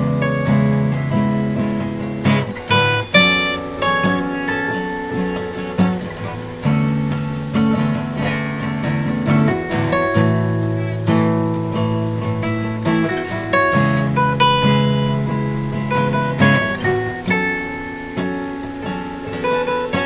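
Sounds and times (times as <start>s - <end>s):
acoustic guitar melody: 0.0s - 20.0s.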